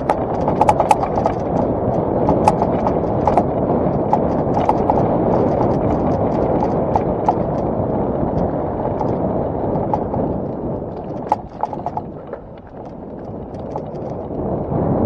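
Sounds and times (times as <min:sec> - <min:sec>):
mountain bike rattling over rocks: 0:00.0 - 0:14.6
wind: 0:00.0 - 0:15.0.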